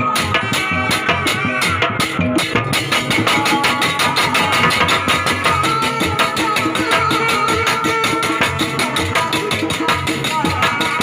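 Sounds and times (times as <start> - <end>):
band music with fast drum beat: 0.0 - 11.0.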